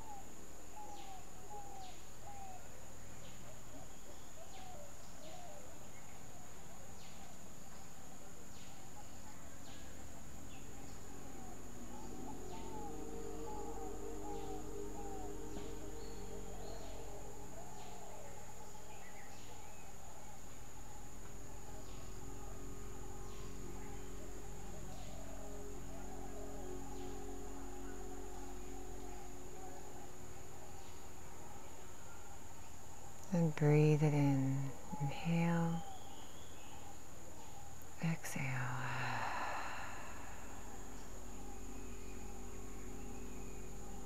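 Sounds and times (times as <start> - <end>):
high-pitched insect drone: 5.9 - 44.0.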